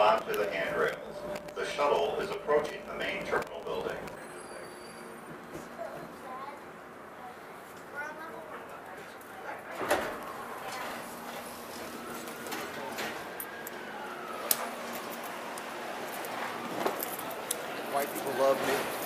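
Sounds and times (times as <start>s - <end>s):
faint whine: 0.0s - 6.5s
passengers talking: 0.0s - 19.0s
shuttle train rumbling: 0.0s - 19.0s.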